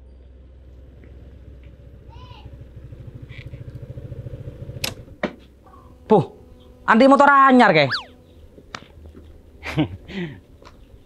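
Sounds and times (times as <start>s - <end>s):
scooter engine running: 1.1s - 8.4s.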